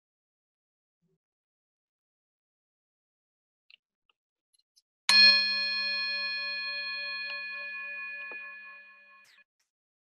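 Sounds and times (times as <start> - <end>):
bell ringing: 5.1 - 9.4.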